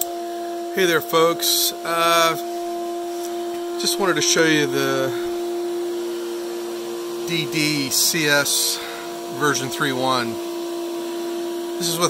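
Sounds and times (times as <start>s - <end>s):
cnc router machine hum: 0.0s - 12.0s.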